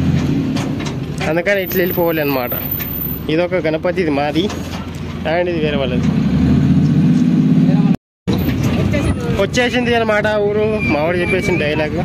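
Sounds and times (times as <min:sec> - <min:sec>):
riding noise of moving vehicle: 0:00.0 - 0:12.0
voices: 0:01.2 - 0:04.5, 0:08.7 - 0:12.0.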